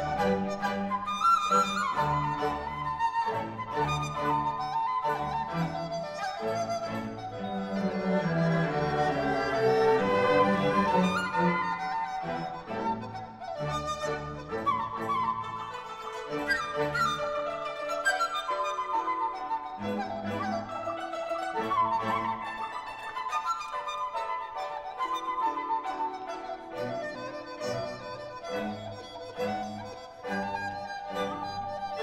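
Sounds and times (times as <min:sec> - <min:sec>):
cellos and double basses low notes: 0:00.0 - 0:15.4
bamboo flute melody: 0:00.0 - 0:32.0
orchestra playing: 0:00.0 - 0:32.0.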